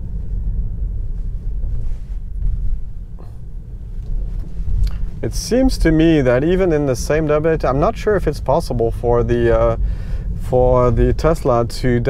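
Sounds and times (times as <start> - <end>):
tyre and road rumble in car: 0.0 - 12.0.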